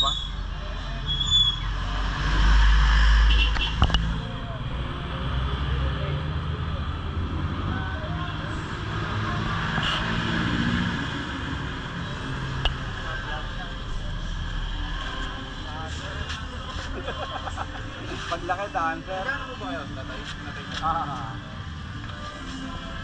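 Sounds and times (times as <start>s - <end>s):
voices in background: 3.8s - 23.0s.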